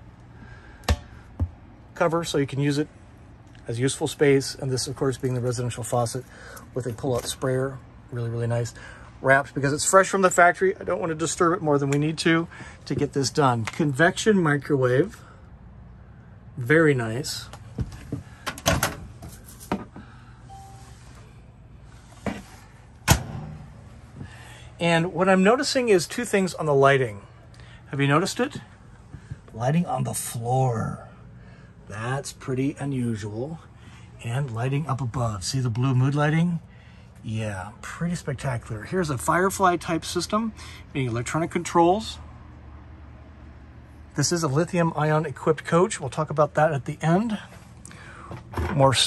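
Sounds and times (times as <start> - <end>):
low steady hum: 0.0 - 49.0.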